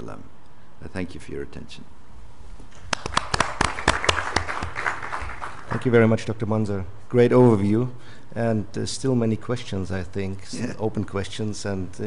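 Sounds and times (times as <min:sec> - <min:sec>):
audience applause: 0:02.9 - 0:05.9.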